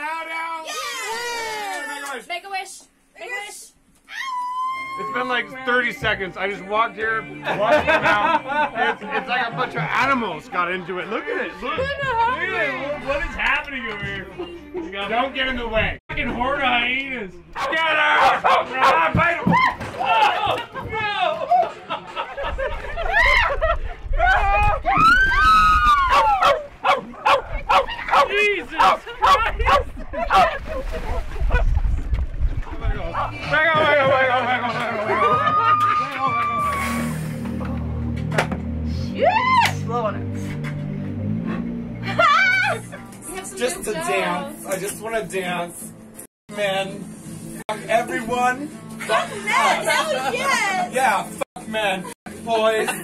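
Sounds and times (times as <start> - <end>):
dog barking: 17.6 - 19.0, 26.4 - 29.9.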